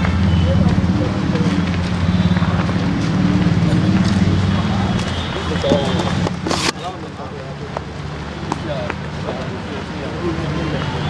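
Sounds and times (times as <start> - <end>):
engine running: 0.0 - 11.0.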